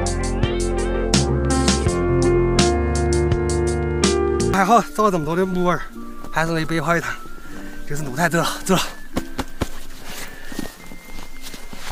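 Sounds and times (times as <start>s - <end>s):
rustling undergrowth: 4.8s - 11.9s
footsteps in undergrowth: 5.5s - 11.9s.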